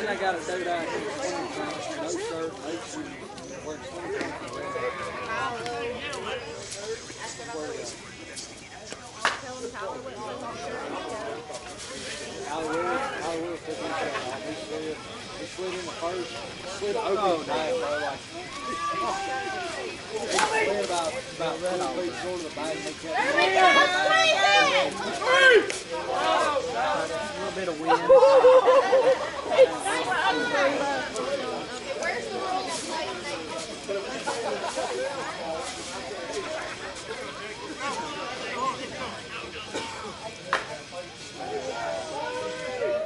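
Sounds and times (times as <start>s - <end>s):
people talking: 0.0s - 43.0s
people calling out: 3.4s - 7.6s, 17.5s - 20.7s, 23.1s - 35.3s, 41.3s - 43.0s.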